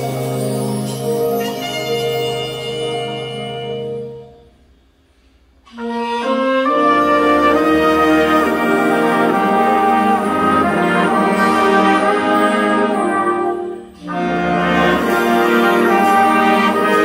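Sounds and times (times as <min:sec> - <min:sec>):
jazz big band playing: 0:00.0 - 0:04.6, 0:05.6 - 0:17.0.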